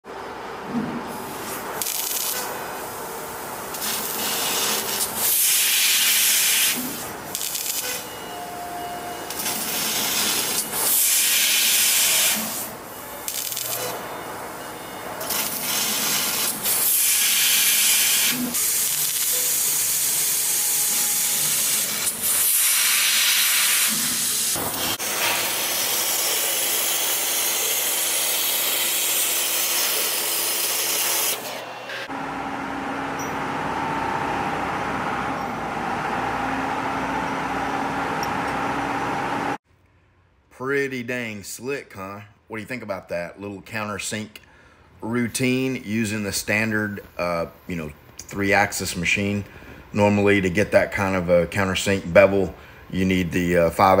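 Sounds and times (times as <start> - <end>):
laser cutter gas hissing: 1.2 - 8.1, 9.3 - 14.0, 15.2 - 31.5.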